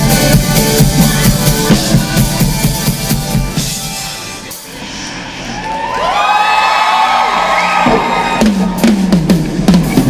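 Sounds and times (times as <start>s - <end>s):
band with drums playing: 0.0s - 4.8s, 7.8s - 10.0s
concert crowd cheering and whooping: 5.2s - 9.3s.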